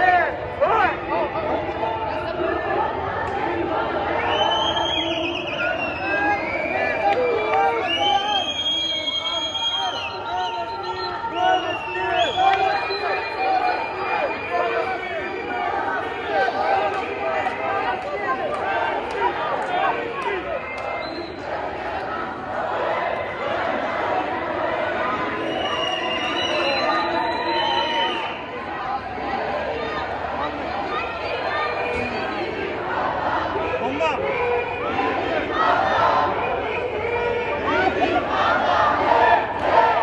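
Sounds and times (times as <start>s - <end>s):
crowd shouting: 0.0s - 40.0s.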